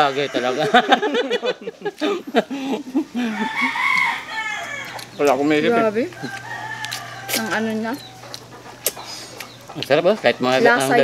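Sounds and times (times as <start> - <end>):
rooster crowing: 0.0 - 1.5, 3.0 - 8.7.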